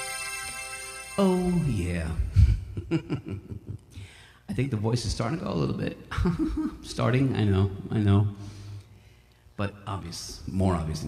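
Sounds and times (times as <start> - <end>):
man making wordless sounds: 1.2 - 3.8.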